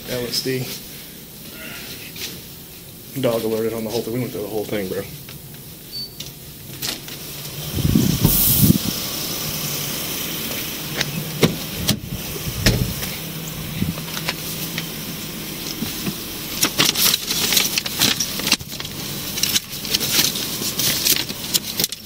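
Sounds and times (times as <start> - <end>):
car engine idling: 0.0 - 22.0
rush of noise through door: 6.8 - 10.3
car door clicks and clunks: 11.0 - 13.0.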